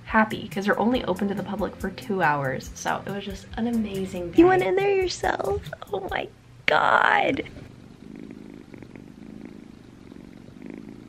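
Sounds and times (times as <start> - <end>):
kitten purring: 7.0 - 11.0.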